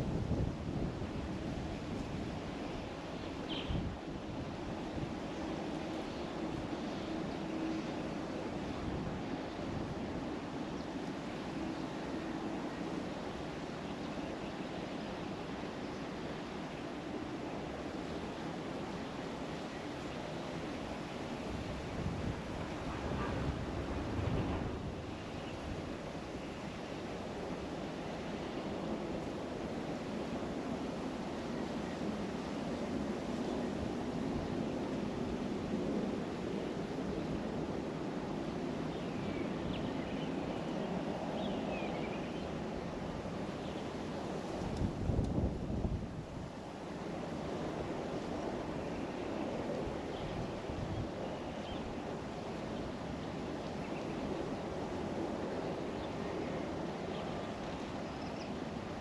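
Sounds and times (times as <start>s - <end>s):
wind buffeting microphone: 0.0s - 10.6s, 21.3s - 26.8s, 44.1s - 53.6s.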